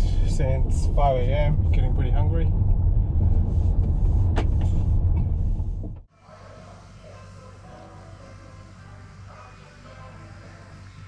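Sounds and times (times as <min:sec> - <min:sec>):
engine and road rumble: 0:00.0 - 0:06.2.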